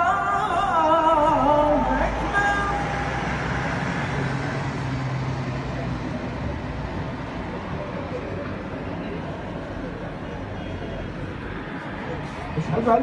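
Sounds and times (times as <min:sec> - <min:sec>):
city road traffic: 0:00.0 - 0:13.0.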